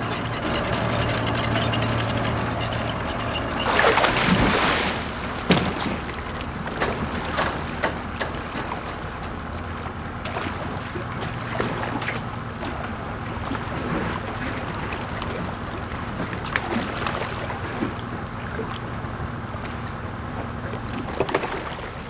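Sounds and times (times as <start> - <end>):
boat engine running: 0.0 - 22.0
water noise: 0.0 - 22.0
wind: 0.0 - 22.0.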